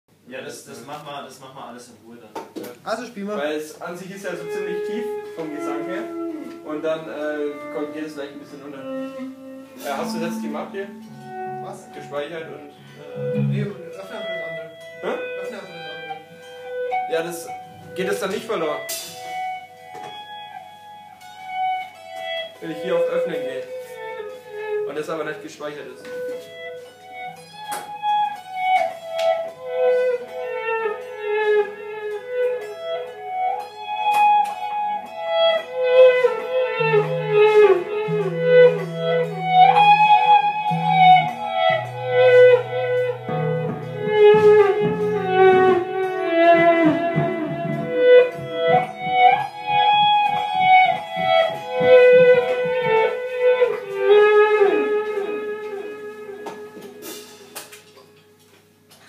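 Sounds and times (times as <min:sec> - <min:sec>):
picked lead melody: 0:04.0 - 0:58.6
electric bass guitar: 0:08.8 - 0:17.0, 0:29.4 - 0:57.3.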